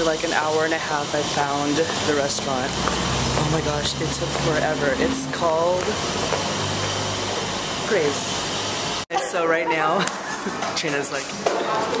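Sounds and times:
person speaking: 0.0 - 6.3, 7.8 - 8.5, 9.1 - 11.4
road traffic hum: 0.0 - 9.0.

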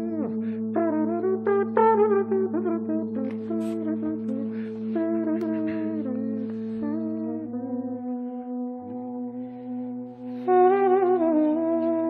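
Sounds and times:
men humming in harmony: 0.0 - 10.8
low held drone: 0.0 - 12.0.

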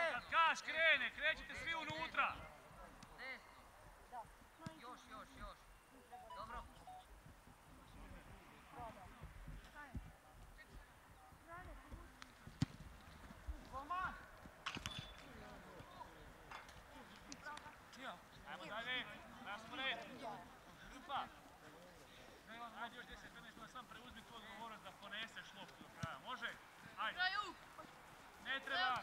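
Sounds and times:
football being kicked: 11.6 - 13.0.

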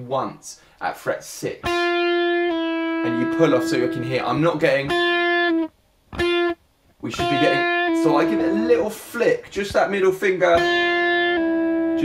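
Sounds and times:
electric guitar note: 1.7 - 8.9, 10.5 - 12.0.

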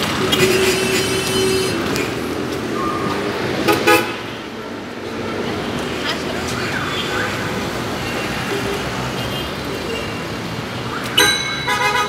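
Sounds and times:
steady road noise: 0.0 - 12.0
vehicle horn honks: 11.2 - 12.0.

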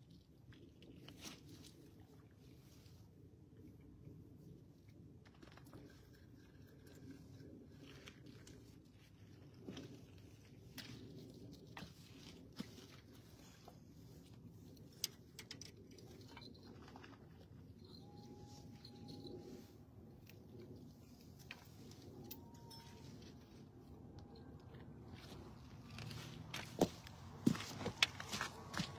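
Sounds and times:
faint low hum: 0.0 - 28.9
faint held tone: 17.6 - 20.4, 21.5 - 25.2.

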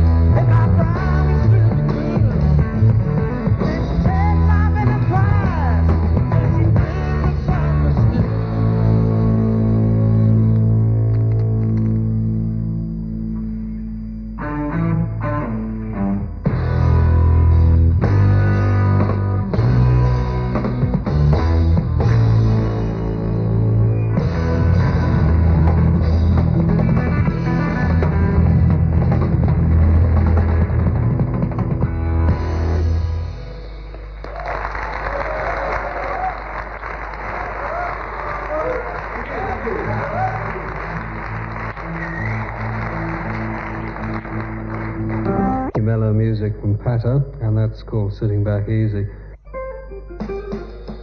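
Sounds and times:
drums: 0.0 - 10.5, 16.4 - 36.8, 49.6 - 51.0
rock band sustained chord: 0.0 - 34.2
bass guitar: 0.0 - 35.3, 38.6 - 51.0
electric guitar: 0.0 - 37.3, 38.6 - 45.9, 49.3 - 51.0.

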